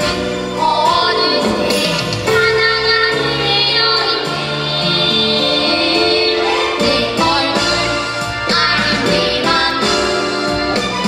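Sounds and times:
girls singing: 0.0 - 10.8
instrumental accompaniment: 0.0 - 11.0.

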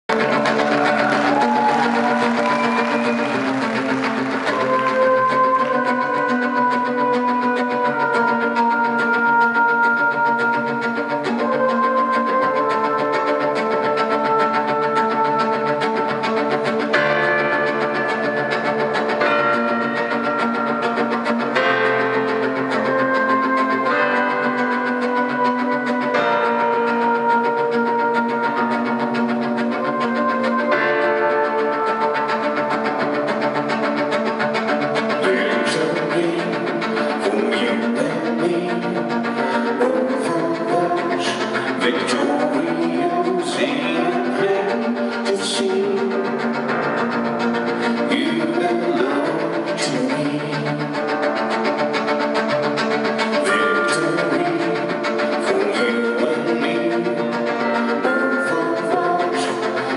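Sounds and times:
cello: 0.0 - 59.9
brass horn melody: 0.1 - 35.6
grand piano: 0.1 - 59.9.

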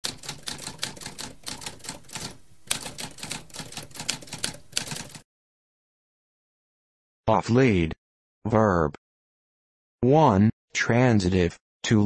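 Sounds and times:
typewriter typing: 0.0 - 5.2.

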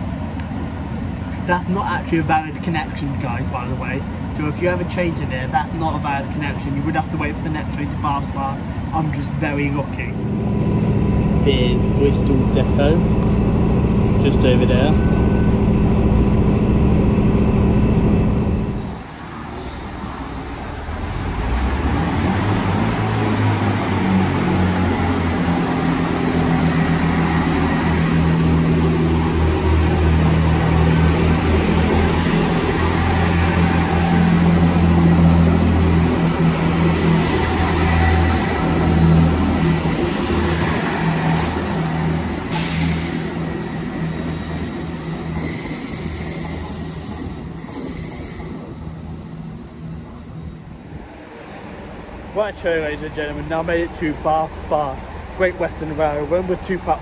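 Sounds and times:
train engines droning: 0.0 - 57.0.

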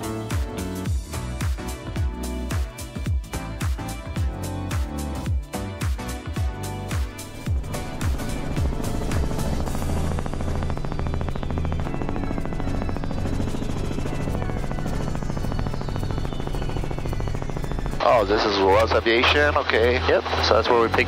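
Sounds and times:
helicopter engine: 0.0 - 21.0
music: 0.0 - 21.0
helicopter rotor chop: 6.2 - 21.0.

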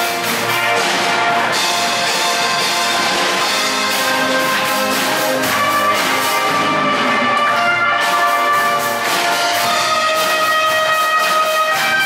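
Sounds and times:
live brass ensemble music: 0.0 - 12.0.

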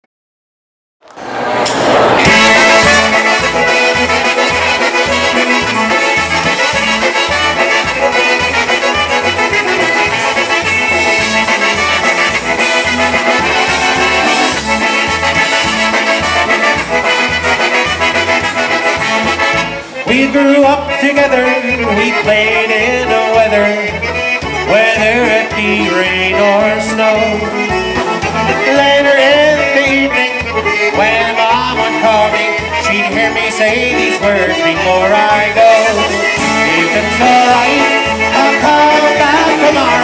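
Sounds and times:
accordion: 1.2 - 40.0
live polka band playing: 1.2 - 40.0.

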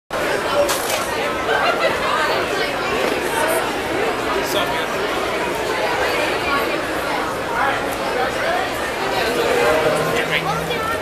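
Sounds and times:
crowd chatter: 0.1 - 11.0.

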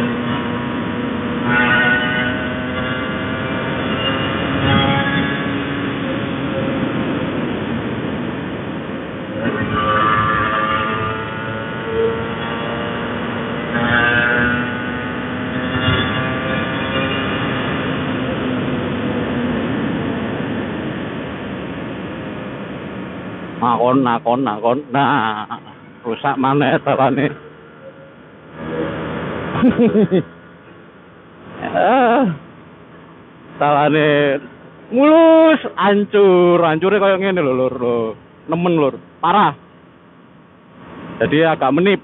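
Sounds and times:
two-stroke motorcycle engine revving: 0.0 - 21.3.

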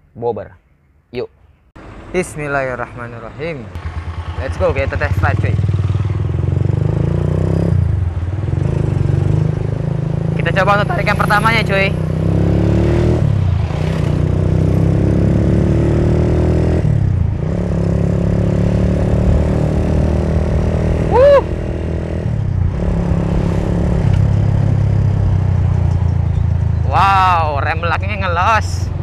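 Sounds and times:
motorcycle engine revving: 3.7 - 29.0
person shouting woo: 21.0 - 21.6.

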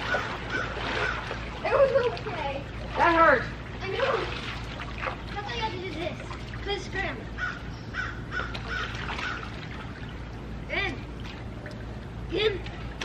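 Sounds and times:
pool water lapping: 0.0 - 13.0
crow cawing: 7.4 - 9.5.

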